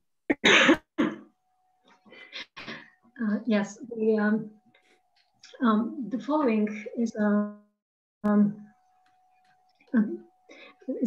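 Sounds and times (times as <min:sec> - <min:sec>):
person clearing throat: 0:00.3 - 0:01.3.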